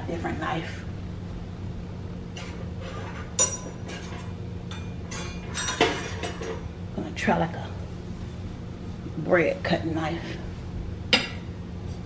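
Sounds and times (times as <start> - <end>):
steady low hum: 0.0 - 12.0
metal cutlery clinking: 3.4 - 6.5.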